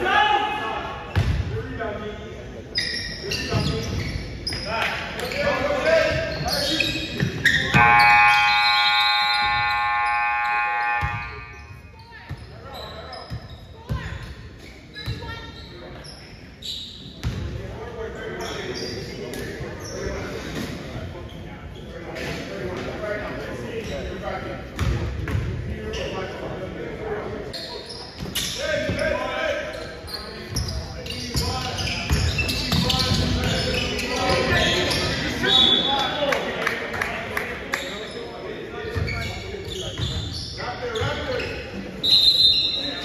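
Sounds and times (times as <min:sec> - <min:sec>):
voices in large gym: 0:00.0 - 0:43.0
scoreboard horn blast: 0:07.7 - 0:11.5.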